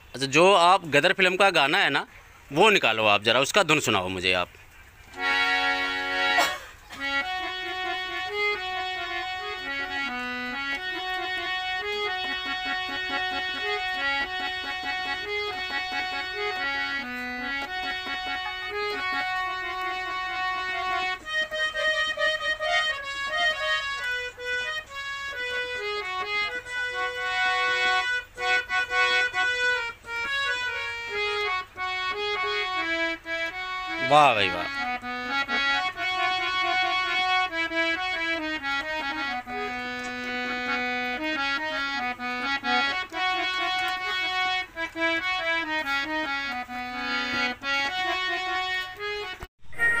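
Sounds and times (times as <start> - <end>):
harmonium melody: 5.1 - 50.0.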